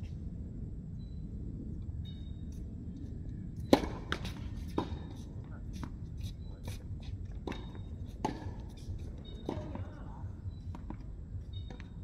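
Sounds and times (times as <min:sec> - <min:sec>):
low background rumble: 0:00.0 - 0:12.0
tennis racket hitting ball: 0:03.7 - 0:05.0, 0:07.4 - 0:08.6.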